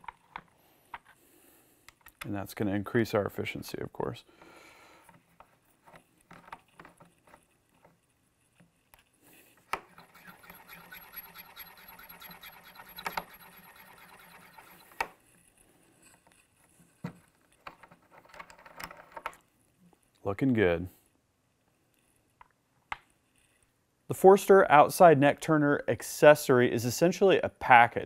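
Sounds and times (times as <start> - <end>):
cutter scraping brass case: 9.8 - 15.2.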